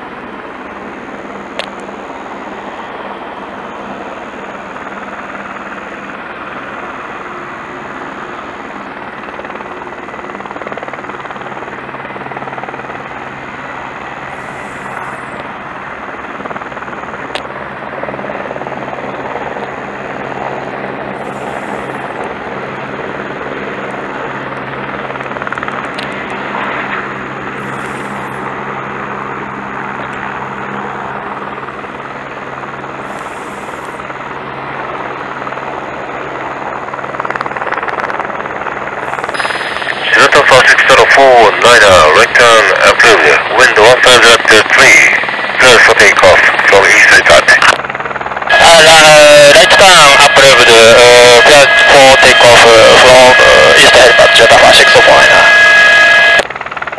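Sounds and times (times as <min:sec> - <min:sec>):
helicopter turbine and rotor hum: 0:00.0 - 0:56.9.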